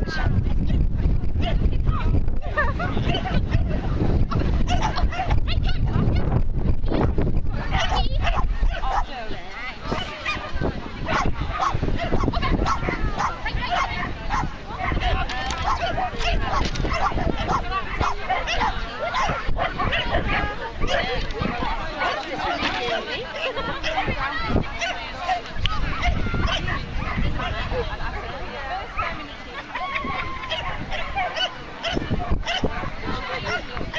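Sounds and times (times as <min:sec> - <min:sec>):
people talking: 0:00.0 - 0:33.9
dogs barking: 0:04.6 - 0:05.4, 0:07.7 - 0:09.1, 0:09.9 - 0:21.6, 0:24.7 - 0:25.1, 0:25.9 - 0:27.8, 0:28.9 - 0:29.3, 0:30.4 - 0:33.7.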